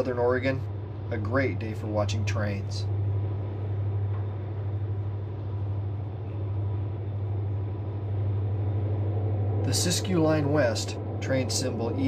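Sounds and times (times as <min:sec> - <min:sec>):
diesel locomotive engines droning: 0:00.0 - 0:12.0.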